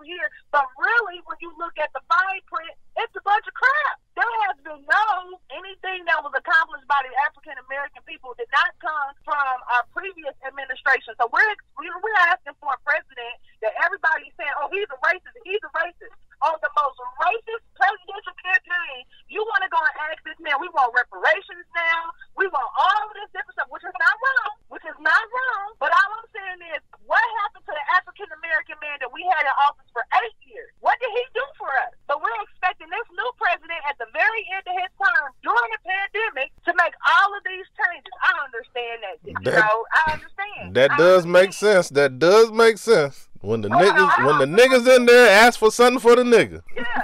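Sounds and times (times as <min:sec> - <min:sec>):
person talking over telephone: 0:39.0 - 0:47.0.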